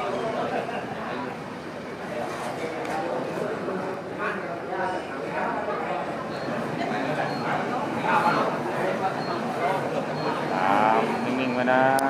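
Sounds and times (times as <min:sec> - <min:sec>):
voices murmuring in a hall: 0:00.0 - 0:12.0.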